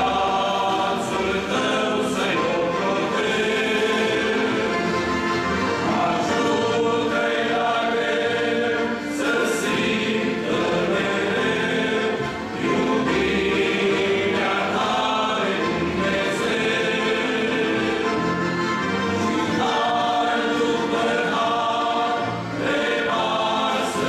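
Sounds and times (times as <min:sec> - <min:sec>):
men's choir singing a hymn: 0:00.0 - 0:24.0.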